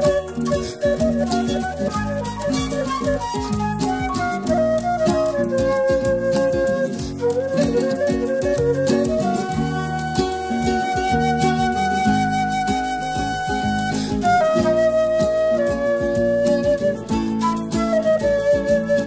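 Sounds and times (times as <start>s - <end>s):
bass: 0.0s - 6.3s
flute solo: 0.0s - 19.0s
piano: 0.0s - 19.0s.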